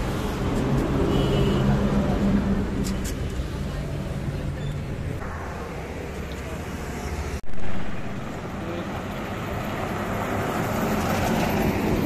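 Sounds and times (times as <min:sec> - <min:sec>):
rumble of approaching cars: 0:00.0 - 0:12.0.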